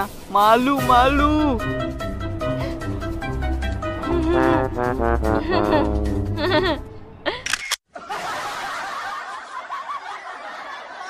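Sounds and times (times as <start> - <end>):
people chuckling: 5.2 - 11.0.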